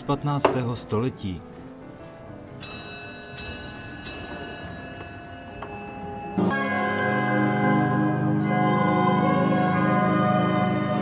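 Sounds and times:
bell-like tones ringing: 2.6s - 6.7s
pipe organ chords: 3.3s - 11.0s.

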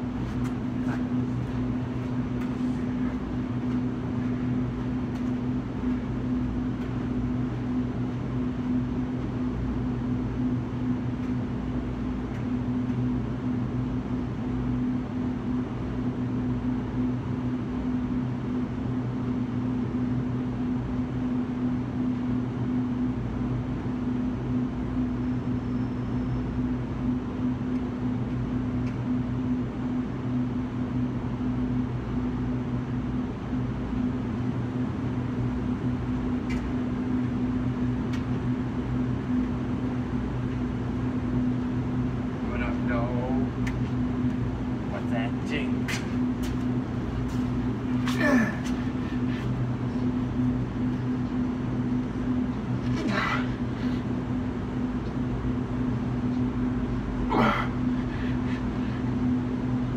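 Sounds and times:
low mechanical hum: 0.0s - 59.9s.

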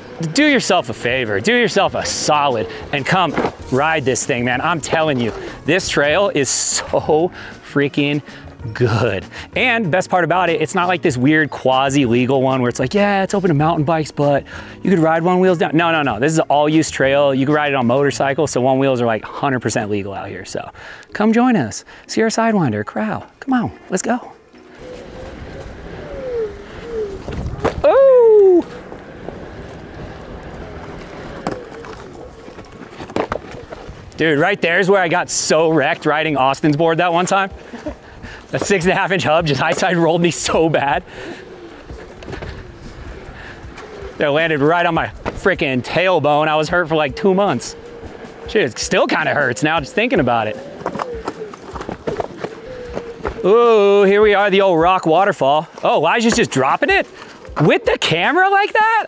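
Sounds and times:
wind: 0.0s - 59.0s
tyre rumble on dirt: 1.0s - 6.3s, 27.1s - 36.5s, 37.9s - 47.0s, 48.5s - 55.1s
wheels knocking and clattering: 25.0s - 58.6s.

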